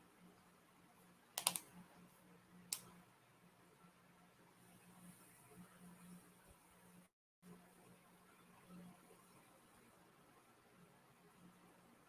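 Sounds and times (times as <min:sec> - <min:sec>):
keyboard keystroke clicks: 0:01.4 - 0:01.7.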